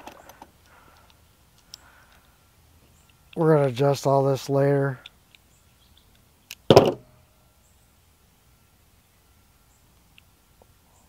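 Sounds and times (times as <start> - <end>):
faint small clicks: 0.0 - 2.4, 5.0 - 6.6, 10.0 - 10.7.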